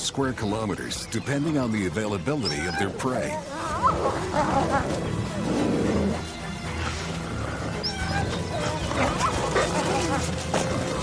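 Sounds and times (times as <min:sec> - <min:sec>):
background music: 0:00.0 - 0:11.0
wolves growling: 0:02.3 - 0:11.0.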